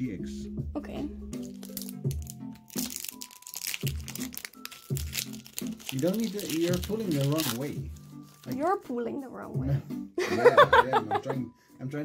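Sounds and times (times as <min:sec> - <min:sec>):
background music: 0:00.0 - 0:12.0
foil wrapper crinkling: 0:01.4 - 0:08.6.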